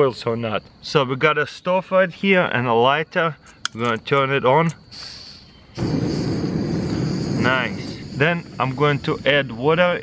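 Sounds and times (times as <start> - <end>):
gas burner igniting: 4.7 - 10.0
gas stove hissing: 4.8 - 10.0
steady burner flame roar: 5.8 - 10.0.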